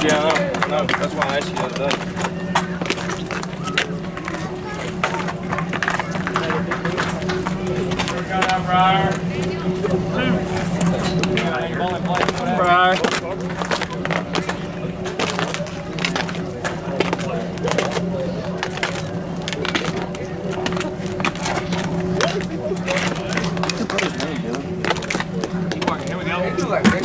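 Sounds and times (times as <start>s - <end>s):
spectators talking: 0.0s - 27.0s
steady low hum: 0.0s - 27.0s.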